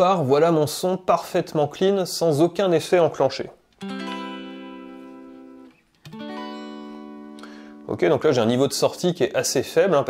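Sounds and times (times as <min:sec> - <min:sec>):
clean electric guitar chords: 0:03.8 - 0:09.0.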